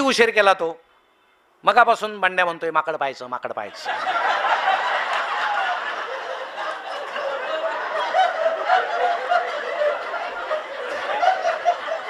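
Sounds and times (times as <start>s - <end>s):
audience laughing: 3.7s - 12.0s.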